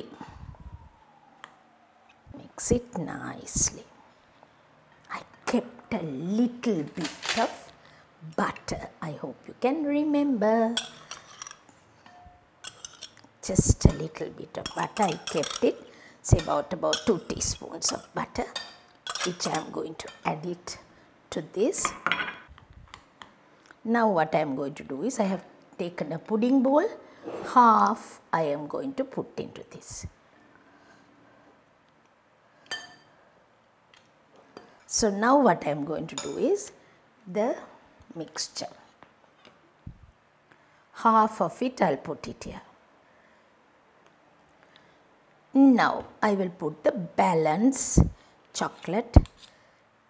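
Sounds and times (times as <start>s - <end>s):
metal spoon clinking on glass bowl: 10.8s - 13.2s, 13.9s - 15.7s, 16.4s - 20.3s, 32.7s - 33.1s.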